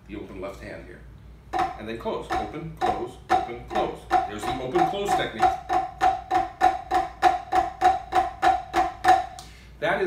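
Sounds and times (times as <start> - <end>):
drumsticks on practice pad: 1.5 - 9.5.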